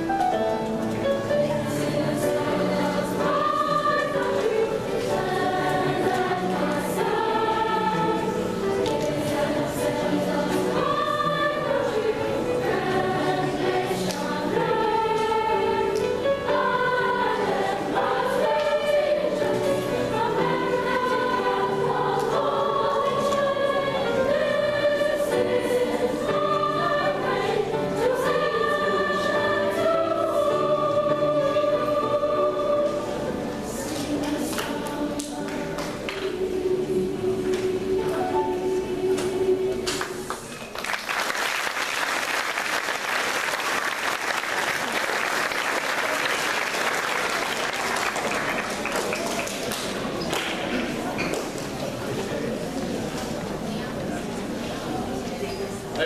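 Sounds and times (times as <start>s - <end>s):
girls' choir singing: 0.0s - 40.6s, 41.7s - 56.0s
piano accompaniment: 0.0s - 40.6s.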